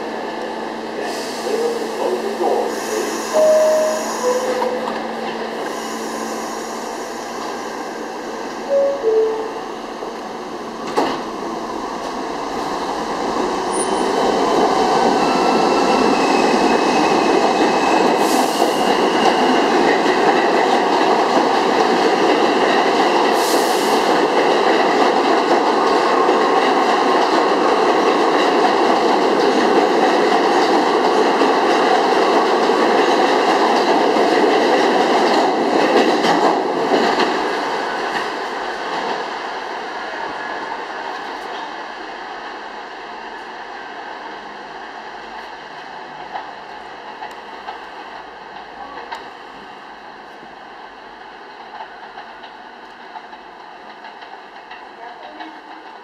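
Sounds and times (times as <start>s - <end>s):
subway train wheels rumbling: 0.0s - 56.0s.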